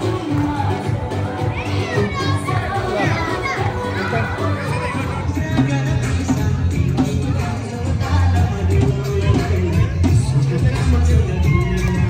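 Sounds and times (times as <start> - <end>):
children shouting and chattering: 0.0 - 12.0
steady bass line: 0.0 - 12.0.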